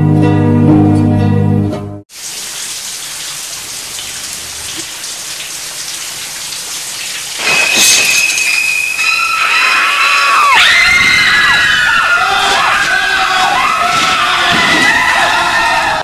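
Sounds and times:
shower water spraying: 0:02.1 - 0:09.3
piercing high shrieks: 0:07.4 - 0:16.0.

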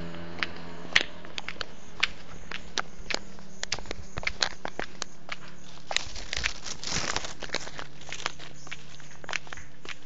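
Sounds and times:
footsteps on stone path: 0:00.0 - 0:10.0.

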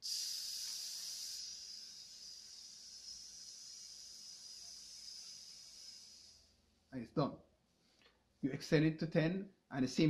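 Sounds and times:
man hissing through teeth: 0:00.0 - 0:06.6.

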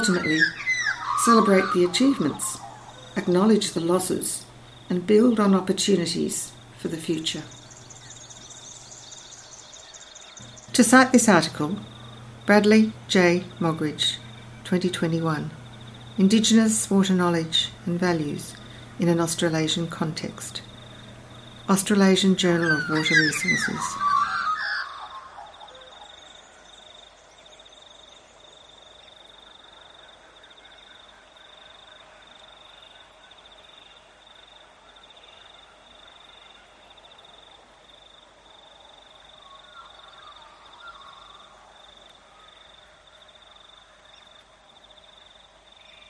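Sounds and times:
insects and frogs calling: 0:00.0 - 0:46.0.

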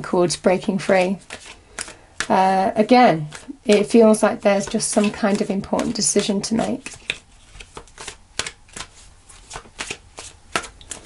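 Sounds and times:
cards being shuffled: 0:00.8 - 0:02.3, 0:03.2 - 0:11.0.

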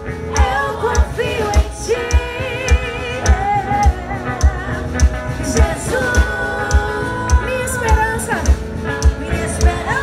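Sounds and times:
steady kick drum beat: 0:00.0 - 0:10.0
worship band playing: 0:00.0 - 0:10.0.

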